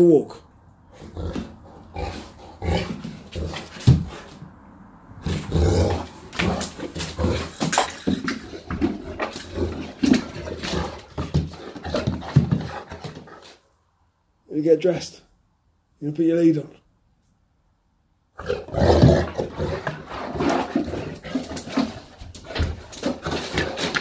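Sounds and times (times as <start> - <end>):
dog making excited vocal noises: 5.4 - 13.6.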